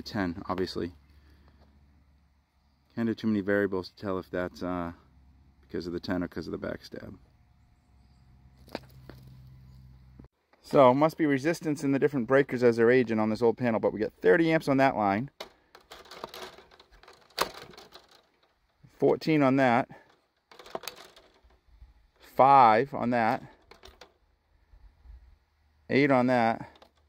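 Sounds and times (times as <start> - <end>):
clamp meter clicking and rattling: 15.3 - 21.6, 23.2 - 24.2, 26.3 - 27.0
meter jaws knocking against wires: 15.4 - 18.4.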